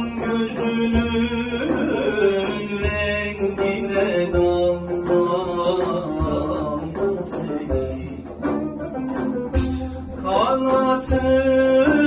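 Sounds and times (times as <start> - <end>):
man singing long held notes: 0.0 - 8.3, 10.2 - 12.0
frame drum: 0.0 - 12.0
plucked lute: 0.0 - 12.0.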